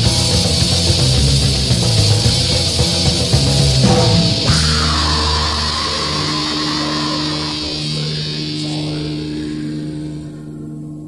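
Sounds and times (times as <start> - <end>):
distorted guitar chord ringing: 0.0 - 11.0.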